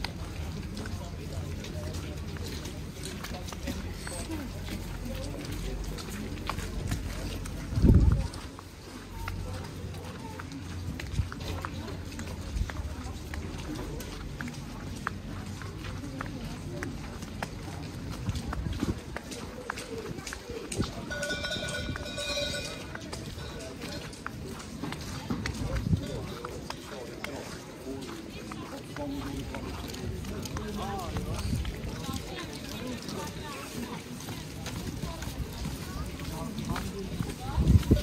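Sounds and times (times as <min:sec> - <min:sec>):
faint voices of passers-by: 0:00.0 - 0:38.0
footsteps on wet pavement: 0:00.0 - 0:38.0.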